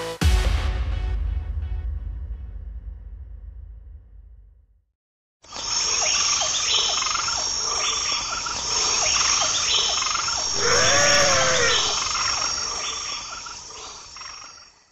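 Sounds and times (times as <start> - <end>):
high-pitched insect trill: 5.5 - 14.9
frog calls: 5.6 - 14.9.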